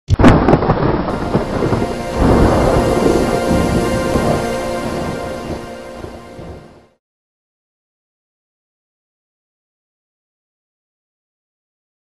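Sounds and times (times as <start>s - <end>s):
thunderclap with rolling rumble: 0.1s - 6.8s
music: 1.1s - 7.0s.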